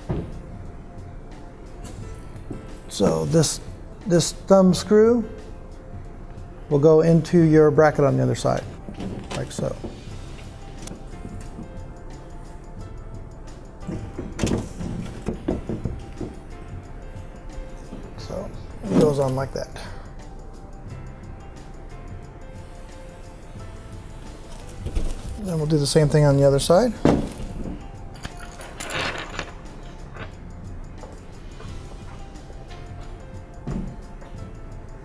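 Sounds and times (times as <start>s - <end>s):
faint background music: 0.0s - 35.0s
metal clicks and knocks: 8.5s - 10.1s, 13.8s - 16.6s, 27.0s - 31.2s
sheet metal rattling: 13.8s - 16.7s.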